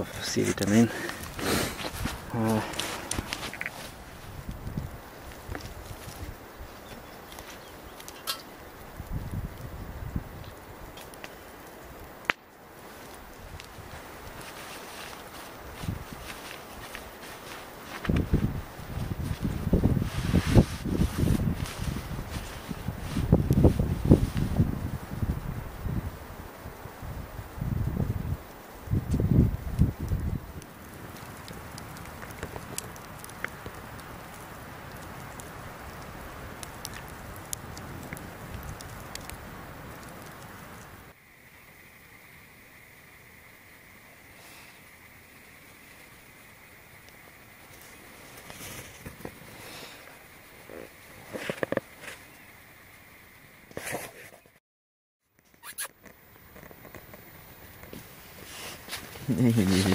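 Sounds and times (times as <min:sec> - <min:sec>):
wind buffeting microphone: 0:00.0 - 0:06.8, 0:08.7 - 0:10.9, 0:15.6 - 0:17.1, 0:17.8 - 0:40.4
campfire crackling: 0:00.0 - 0:54.4, 0:55.3 - 0:59.9
fire popping: 0:00.0 - 0:54.4, 0:55.3 - 0:59.9.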